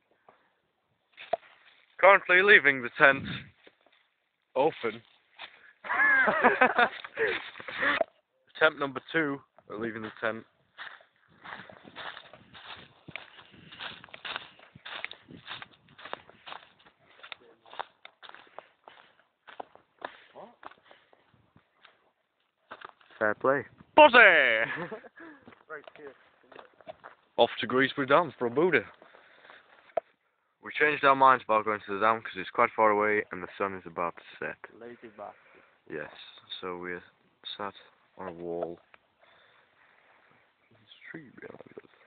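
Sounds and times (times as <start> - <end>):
footsteps on dirt path: 1.1 - 2.0, 3.3 - 8.0, 9.0 - 27.5, 28.3 - 30.2.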